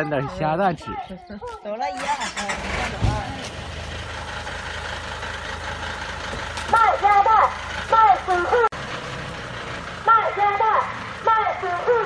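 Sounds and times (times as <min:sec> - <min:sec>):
truck engine starting and idling: 0:00.0 - 0:12.0.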